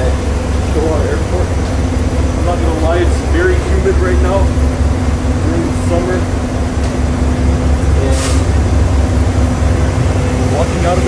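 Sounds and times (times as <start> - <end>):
constant hum: 0.0 - 11.0
heavy engines idling: 0.0 - 11.0.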